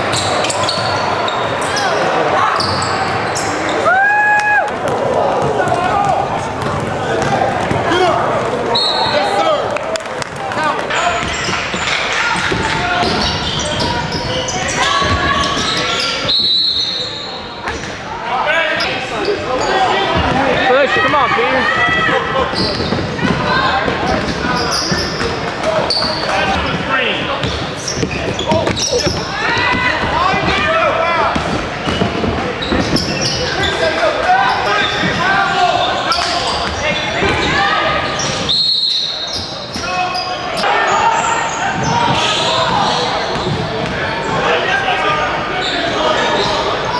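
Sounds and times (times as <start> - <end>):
basketball bouncing on court: 4.8 - 8.1, 11.1 - 16.4, 20.2 - 26.8, 27.4 - 30.7, 31.3 - 33.4, 41.8 - 44.0.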